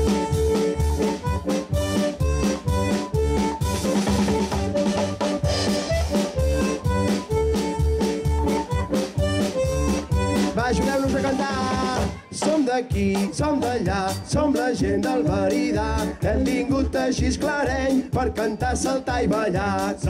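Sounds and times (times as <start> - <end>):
drum kit beat: 0.0 - 20.0
live dance band music: 0.0 - 20.0.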